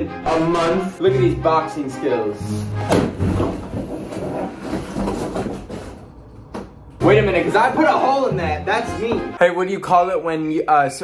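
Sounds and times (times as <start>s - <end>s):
cardboard scraping and rustling: 3.1s - 6.2s.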